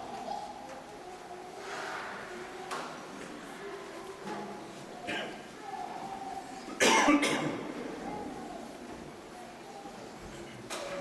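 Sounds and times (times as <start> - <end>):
person coughing: 5.1 - 5.4, 6.8 - 7.6.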